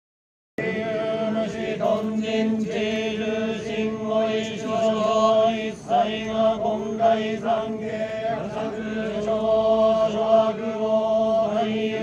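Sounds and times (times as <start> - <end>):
men chanting in unison: 0.6 - 12.0.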